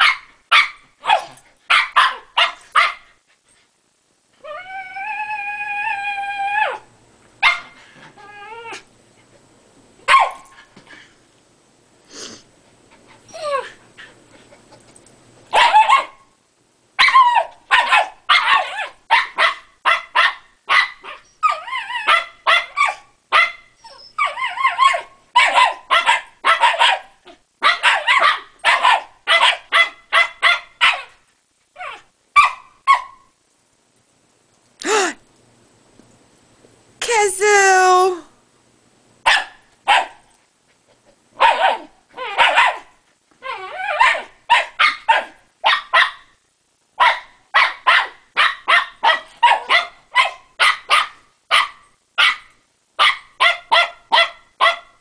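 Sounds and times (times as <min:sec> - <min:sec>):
dogs barking and yipping: 0:00.0 - 0:03.1, 0:07.4 - 0:07.8, 0:10.1 - 0:10.6, 0:15.5 - 0:16.2, 0:17.0 - 0:31.2, 0:39.3 - 0:40.2, 0:41.4 - 0:46.3, 0:47.0 - 0:55.0
dog whining: 0:04.4 - 0:08.9, 0:13.3 - 0:14.1, 0:21.0 - 0:23.0, 0:23.8 - 0:25.7, 0:31.8 - 0:32.1, 0:41.4 - 0:42.7, 0:43.4 - 0:44.3.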